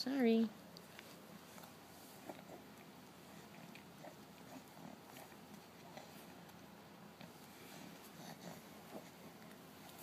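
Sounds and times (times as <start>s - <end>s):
soft throat noises: 0.7s - 6.6s
toddler chewing: 0.7s - 10.0s.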